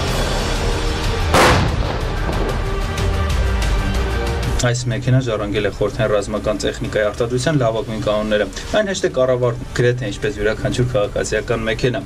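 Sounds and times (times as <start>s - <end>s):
background music: 0.0s - 12.0s
tank gun blast: 1.3s - 3.1s.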